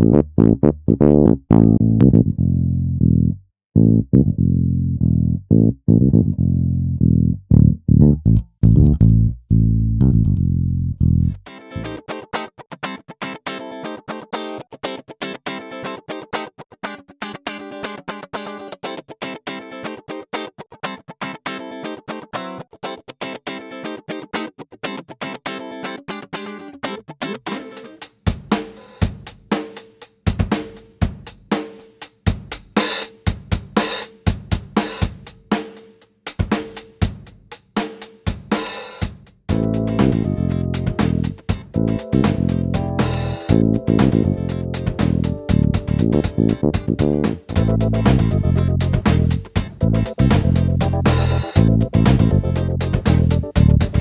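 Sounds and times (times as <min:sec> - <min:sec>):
funk guitar strumming: 0:00.0 - 0:02.4, 0:07.1 - 0:28.1, 0:39.5 - 0:54.0
bass guitar line: 0:00.0 - 0:12.0, 0:39.5 - 0:54.0
drum hits: 0:28.3 - 0:31.7, 0:32.3 - 0:35.8, 0:36.4 - 0:54.0.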